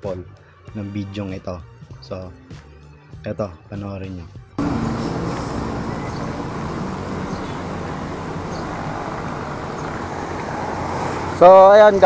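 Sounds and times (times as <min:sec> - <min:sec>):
street traffic noise: 0:04.6 - 0:12.0.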